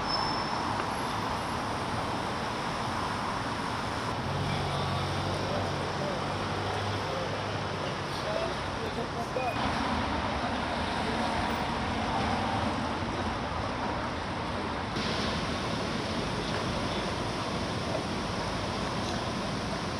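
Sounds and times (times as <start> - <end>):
road traffic hum: 0.0 - 19.9.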